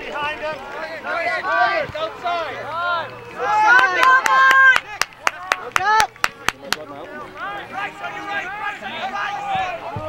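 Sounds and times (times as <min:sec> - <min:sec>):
loud shouting: 0:00.1 - 0:06.2, 0:07.3 - 0:10.0
hands clapping: 0:03.6 - 0:07.0.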